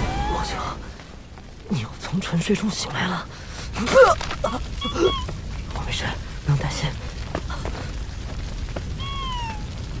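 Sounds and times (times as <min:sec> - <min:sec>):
cat meow: 0:09.0 - 0:09.8.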